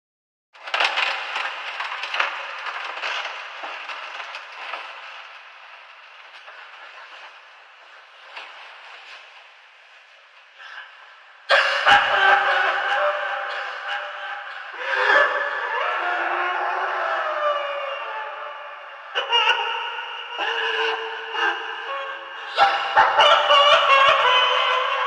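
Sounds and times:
crackling old recording noise: 0.6 - 25.0
man laughing: 11.5 - 16.5, 21.9 - 25.0.

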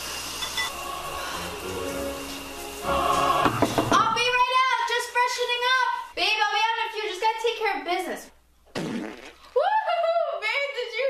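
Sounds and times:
fart: 8.7 - 9.6.

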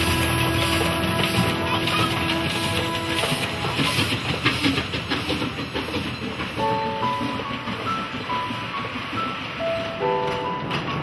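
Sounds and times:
background music: 0.0 - 5.2
steam train wheels clattering: 0.0 - 11.0.

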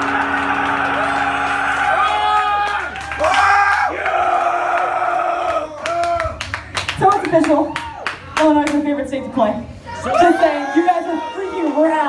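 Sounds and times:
loud shouting voices: 0.0 - 6.3
scattered clapping: 0.0 - 8.8.

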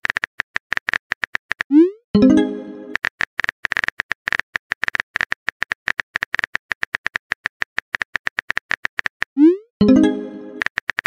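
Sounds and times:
phone keyboard typing clicks: 2.9 - 11.0.

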